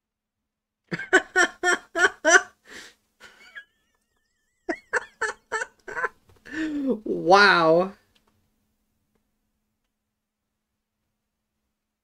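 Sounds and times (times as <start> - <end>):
man laughing heartily: 0.9 - 2.6, 3.2 - 6.8.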